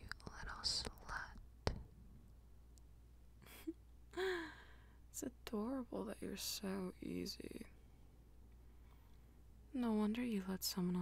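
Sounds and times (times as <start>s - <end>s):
woman laughing breathily: 3.4s - 4.9s.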